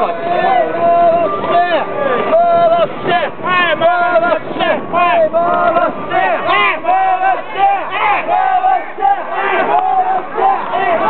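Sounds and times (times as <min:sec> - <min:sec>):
group of men shouting: 0:00.0 - 0:11.0.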